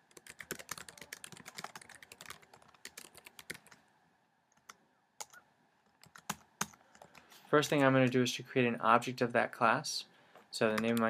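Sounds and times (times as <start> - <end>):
computer keyboard typing: 0.0 - 3.8, 4.6 - 5.4, 6.0 - 7.9, 10.7 - 11.0.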